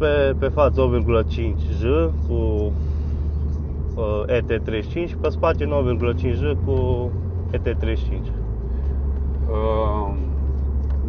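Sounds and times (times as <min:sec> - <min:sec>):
car engine and road drone: 0:00.0 - 0:11.0.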